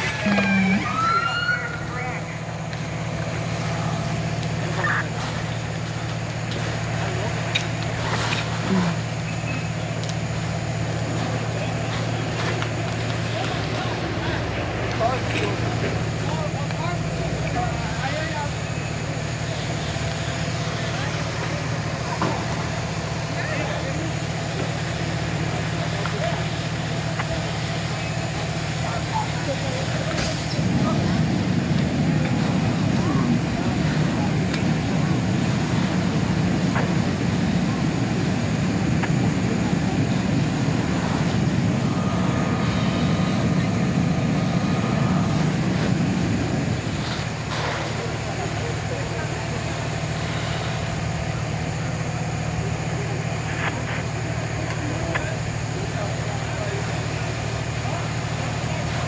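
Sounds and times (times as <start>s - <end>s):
fire engine pump droning: 0.0s - 59.0s
voices: 0.0s - 59.0s.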